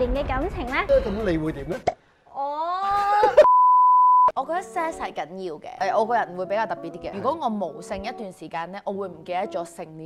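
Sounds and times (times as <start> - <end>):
test-tone bleep: 3.4 - 4.3.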